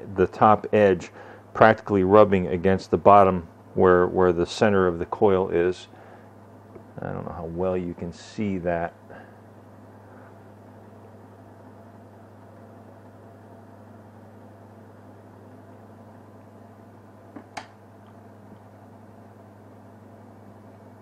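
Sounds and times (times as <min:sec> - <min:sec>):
background hiss: 0:00.0 - 0:18.6
low electrical hum: 0:00.0 - 0:21.0.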